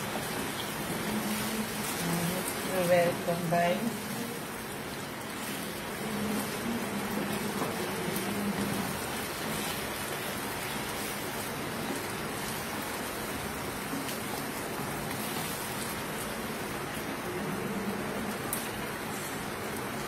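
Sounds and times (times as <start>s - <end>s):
chicken sizzling in hot oil: 0.0s - 20.0s.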